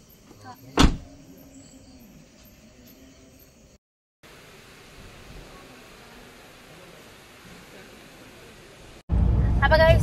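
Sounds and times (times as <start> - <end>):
car door slamming: 0.8 - 1.1.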